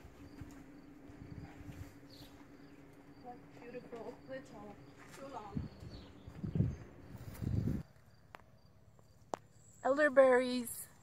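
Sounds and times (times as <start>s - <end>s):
soft low rumbling bumps: 0.0s - 7.8s.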